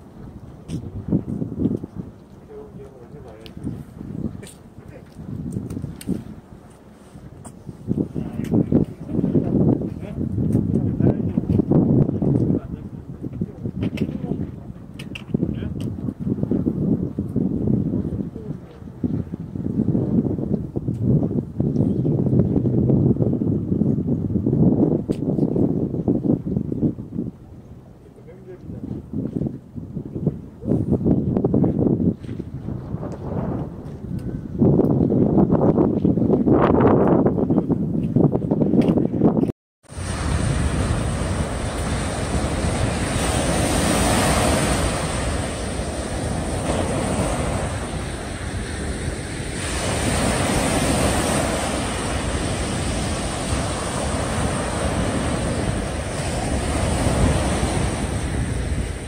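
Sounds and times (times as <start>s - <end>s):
wind buffeting microphone: 0.0s - 59.0s
small waves washing on beach: 39.9s - 59.0s.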